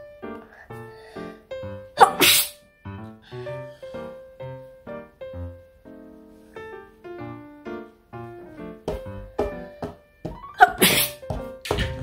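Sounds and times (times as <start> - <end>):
light piano music: 0.0 - 12.0
boy sneezing: 2.0 - 2.6, 10.6 - 11.2.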